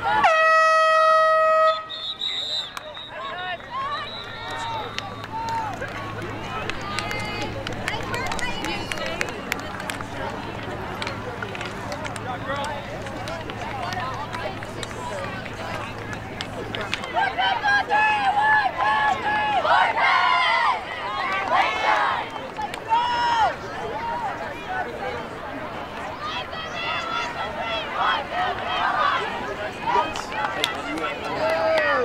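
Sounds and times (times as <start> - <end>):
air horn blast: 0.2 - 2.1
chatter of people: 1.5 - 32.0.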